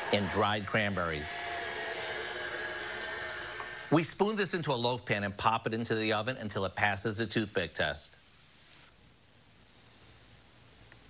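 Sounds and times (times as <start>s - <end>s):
electric stand mixer running: 0.0s - 4.0s.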